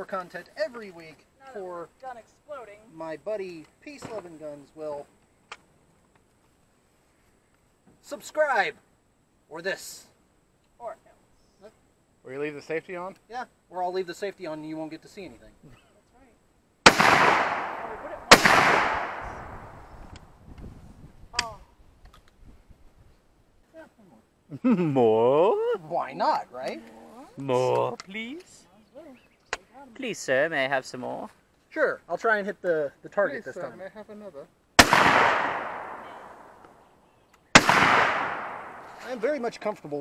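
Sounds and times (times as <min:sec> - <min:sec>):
gunshot echo: 0:16.9 - 0:19.9, 0:34.8 - 0:36.7, 0:37.6 - 0:39.2.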